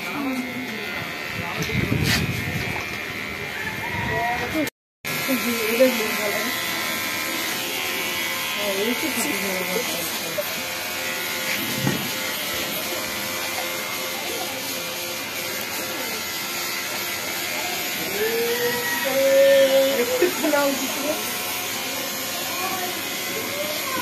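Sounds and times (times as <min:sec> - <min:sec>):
electric hair clipper buzzing: 0:00.0 - 0:24.0.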